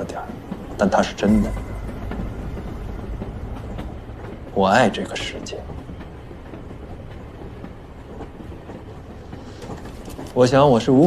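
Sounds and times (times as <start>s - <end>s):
train rumble inside carriage: 0.0s - 11.0s
train wheels clicking: 0.0s - 11.0s.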